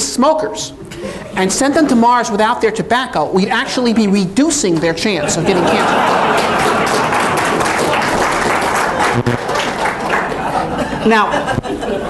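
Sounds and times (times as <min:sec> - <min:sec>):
audience laughing: 0:05.2 - 0:08.2, 0:08.8 - 0:12.0
audience applauding: 0:05.6 - 0:10.9.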